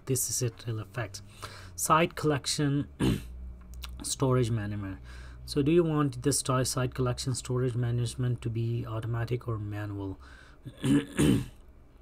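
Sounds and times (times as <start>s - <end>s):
man clearing his throat: 3.0s - 3.3s, 10.7s - 11.6s.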